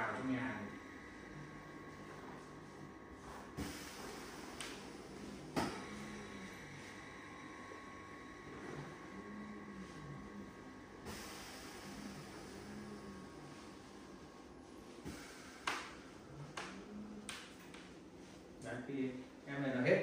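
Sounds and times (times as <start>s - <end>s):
massage chair motors whirring: 0.0s - 20.0s.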